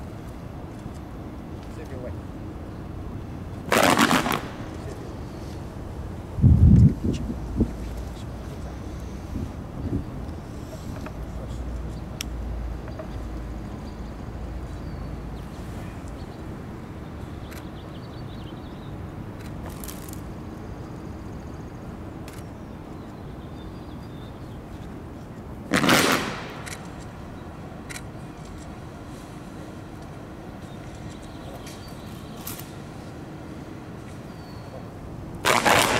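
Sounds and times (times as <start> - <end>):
wind rumbling on microphone: 6.0 - 8.6, 9.2 - 11.2.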